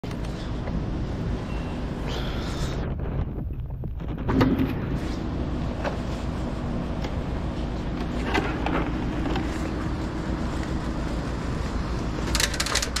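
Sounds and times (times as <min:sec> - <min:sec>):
vehicle engine rumble: 0:00.0 - 0:13.0
wind noise on microphone: 0:01.1 - 0:05.6.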